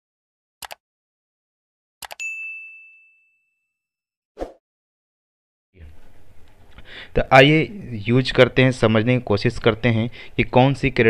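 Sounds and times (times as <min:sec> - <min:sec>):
high bell ding: 0:02.2 - 0:03.8
short swish: 0:04.4 - 0:04.6.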